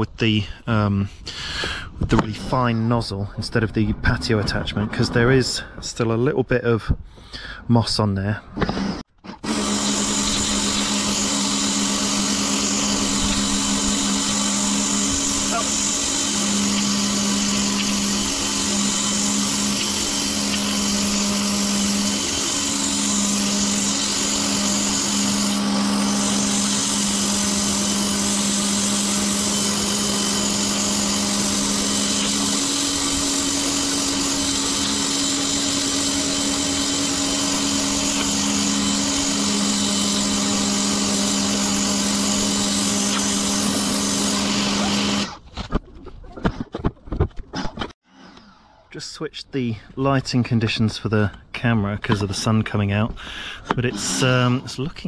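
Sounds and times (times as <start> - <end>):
pressure washer motor hum: 9.4 - 45.4, 53.2 - 55.0
water jet spraying concrete: 9.7 - 45.2.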